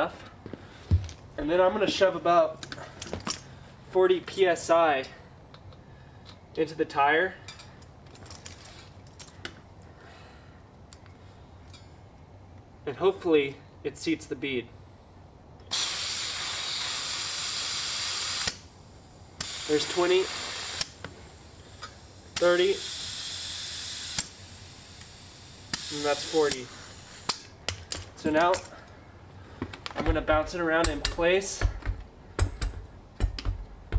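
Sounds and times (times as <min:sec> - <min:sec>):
sharp click of inflator: 0:15.6 - 0:18.7, 0:19.4 - 0:21.1, 0:21.8 - 0:27.5
compressed air hissing into tyre: 0:15.7 - 0:27.6.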